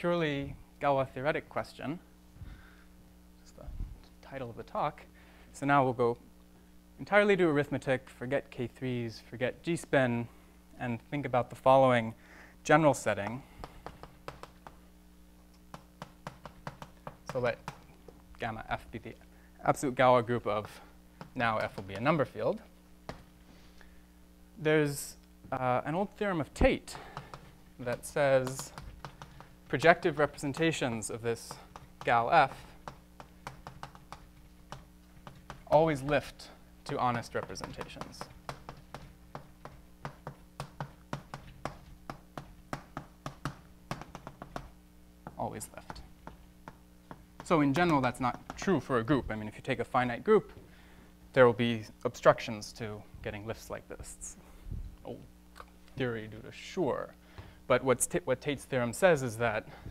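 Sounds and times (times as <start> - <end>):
faint low hum: 0.0 - 59.9
chalk tapping on blackboard: 13.2 - 14.8, 15.7 - 17.9, 20.6 - 22.2, 26.9 - 48.7.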